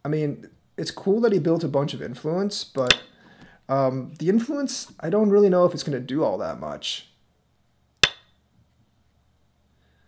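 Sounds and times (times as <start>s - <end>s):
game stone clacking on board: 2.8s - 3.1s, 8.0s - 8.3s.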